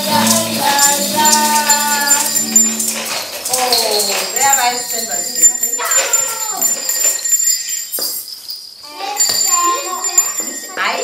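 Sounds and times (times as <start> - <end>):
small hand bells jingling: 0.0 - 11.0.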